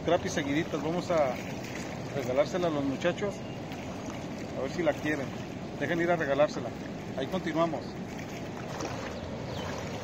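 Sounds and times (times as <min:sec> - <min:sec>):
river water rushing over dam: 0:00.0 - 0:10.0.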